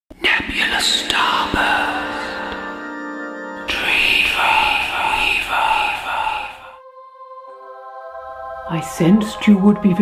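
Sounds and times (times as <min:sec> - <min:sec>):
person whispering: 0:00.1 - 0:02.6, 0:03.6 - 0:06.8.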